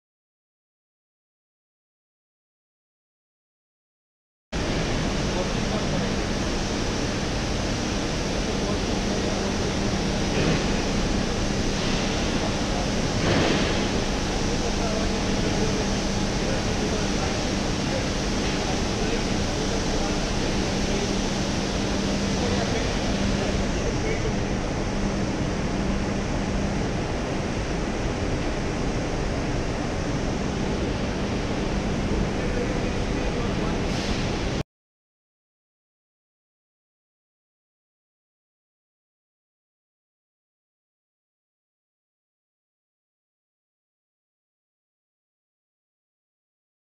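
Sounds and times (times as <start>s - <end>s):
conveyor and drive motor running: 4.6s - 34.6s
industrial machinery rushing: 4.6s - 34.6s.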